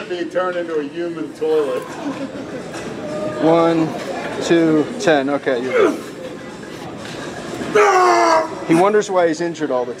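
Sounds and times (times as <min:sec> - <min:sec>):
gym murmur: 0:05.5 - 0:09.0.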